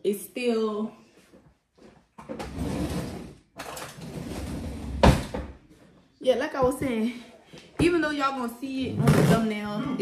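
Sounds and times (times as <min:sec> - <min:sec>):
drawer sliding and rattling: 0:02.3 - 0:05.5.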